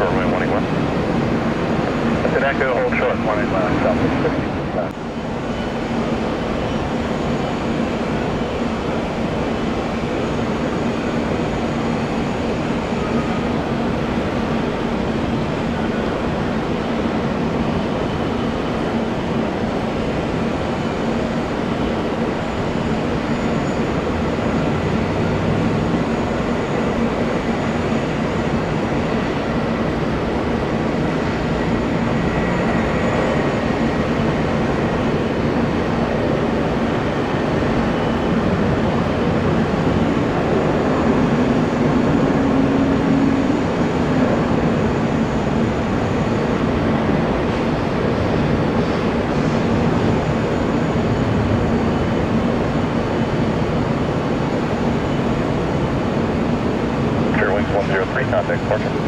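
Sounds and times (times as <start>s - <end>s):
jet engines roaring: 0.0s - 59.0s.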